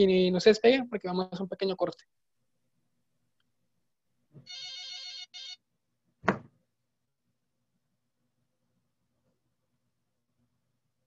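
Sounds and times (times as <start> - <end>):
soft thump: 6.2 - 6.6.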